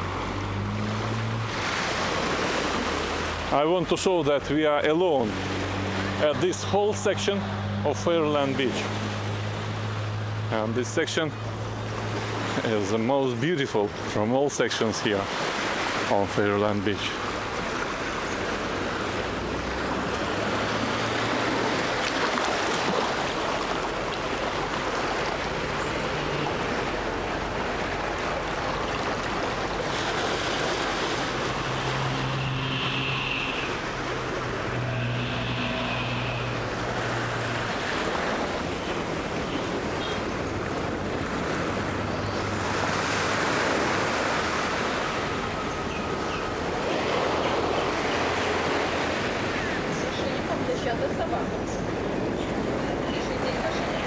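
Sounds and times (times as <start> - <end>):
surf washing onto beach: 0.0 - 54.0.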